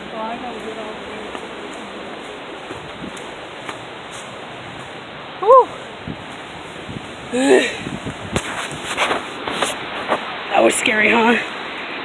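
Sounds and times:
person's voice: 0:00.0 - 0:01.4, 0:10.5 - 0:11.5
footsteps on gravel: 0:00.0 - 0:05.1, 0:07.8 - 0:10.3
waterfall rushing: 0:00.0 - 0:12.0.

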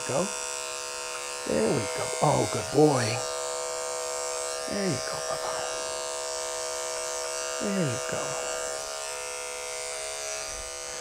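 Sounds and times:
electric clipper buzzing: 0:00.0 - 0:11.0.

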